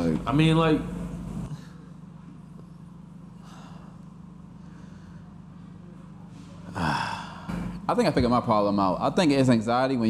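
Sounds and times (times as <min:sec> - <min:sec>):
low steady hum: 0:00.0 - 0:10.0
man sighing: 0:06.7 - 0:07.7.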